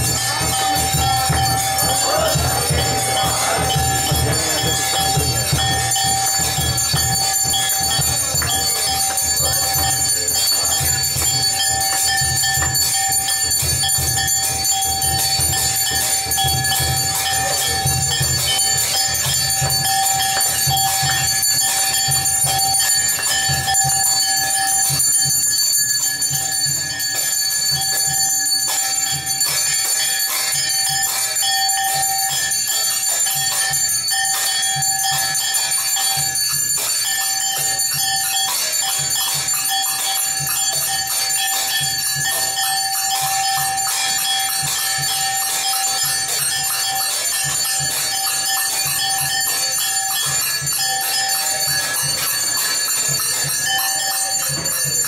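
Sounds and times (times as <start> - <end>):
temple bells ringing: 0.0 - 55.0.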